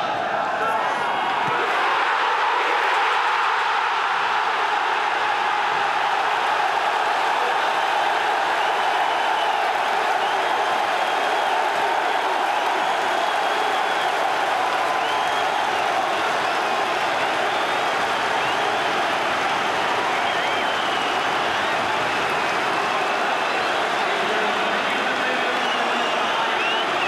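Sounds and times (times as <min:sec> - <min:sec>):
stadium crowd noise: 0:00.0 - 0:27.0.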